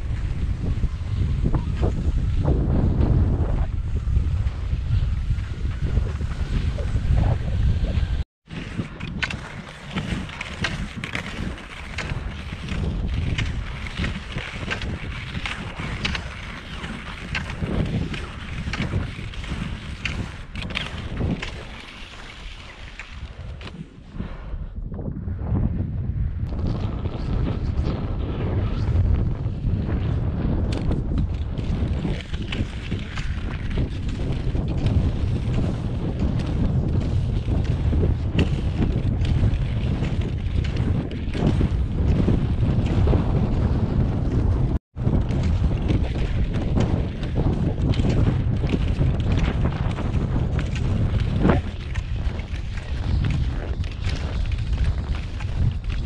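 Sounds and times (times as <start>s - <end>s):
ski poles planting in snow: 0.0s - 24.0s, 30.6s - 56.0s
skis gliding on snow: 0.0s - 24.6s, 26.6s - 56.0s
wind buffeting microphone: 0.0s - 56.0s.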